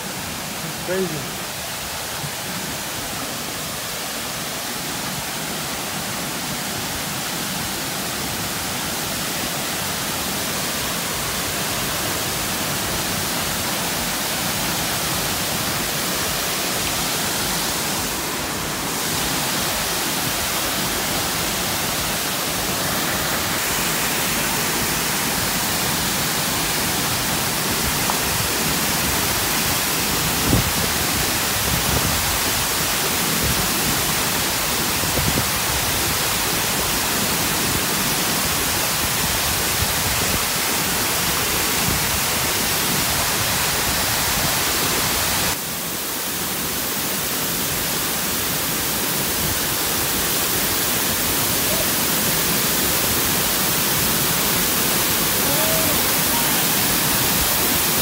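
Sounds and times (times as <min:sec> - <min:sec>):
waterfall and rushing rapids: 0:00.0 - 0:58.0.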